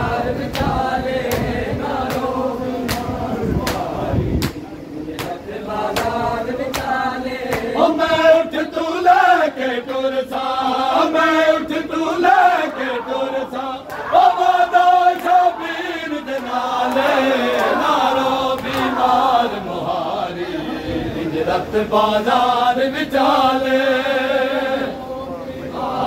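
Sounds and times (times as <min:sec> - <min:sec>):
men chanting: 0:00.0 - 0:26.0
hands slapping chests: 0:02.9 - 0:04.6, 0:05.2 - 0:05.4, 0:06.0 - 0:07.7.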